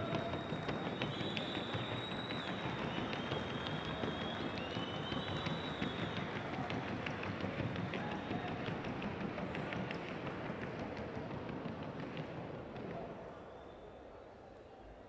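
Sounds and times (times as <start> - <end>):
rapid horse hoofbeats: 0.0 - 13.2.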